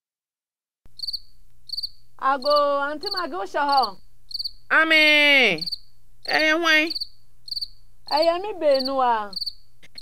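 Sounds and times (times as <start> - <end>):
cricket chirping: 0.9 - 10.0.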